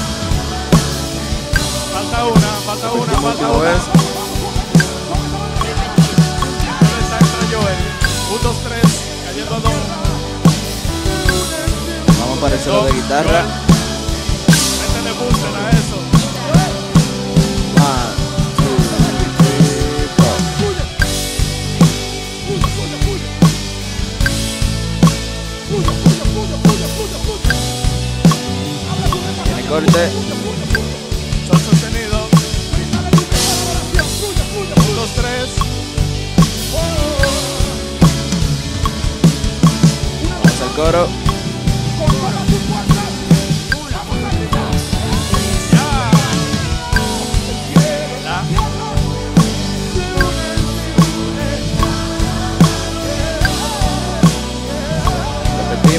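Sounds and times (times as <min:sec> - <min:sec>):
bass drum beat: 0:00.0 - 0:55.9
live band music: 0:00.0 - 0:55.9.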